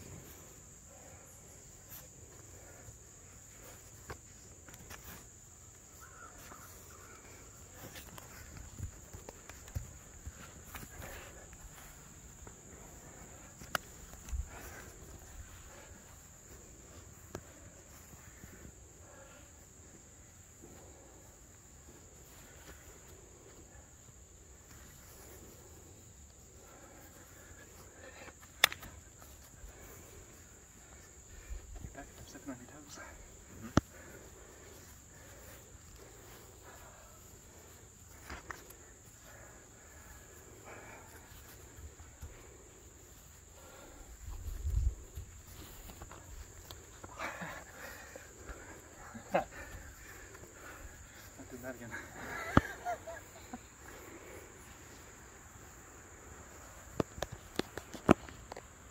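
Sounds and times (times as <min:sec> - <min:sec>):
insect chorus: 0:00.0 - 0:58.9
sharp slaps of strikes: 0:28.6 - 0:28.9.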